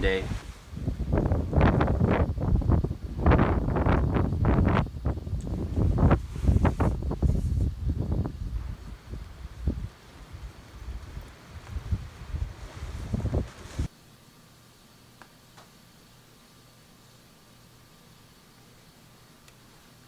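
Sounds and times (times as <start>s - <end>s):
wind buffeting microphone: 0.0s - 13.9s
canvas awning flapping: 5.5s - 13.9s.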